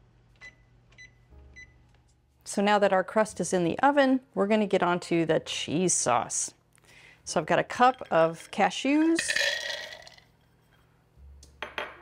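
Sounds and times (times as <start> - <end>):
nuts clattering into plastic cup: 9.0 - 10.3.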